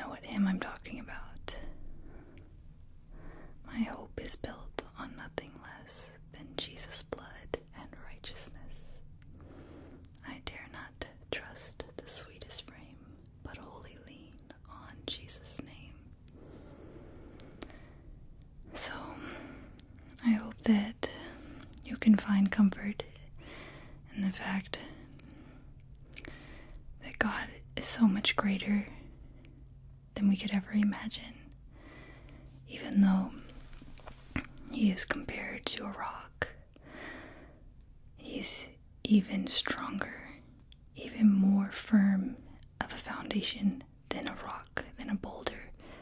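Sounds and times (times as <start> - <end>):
woman whispering: 0.0 - 1.8, 3.6 - 9.0, 10.1 - 16.1, 18.7 - 23.4, 24.1 - 25.3, 27.0 - 29.0, 30.2 - 31.5, 32.6 - 36.6, 38.2 - 40.4, 41.0 - 45.8.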